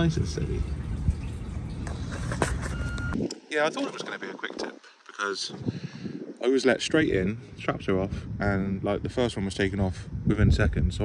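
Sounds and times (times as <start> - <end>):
short beep: 2.6 - 3.2.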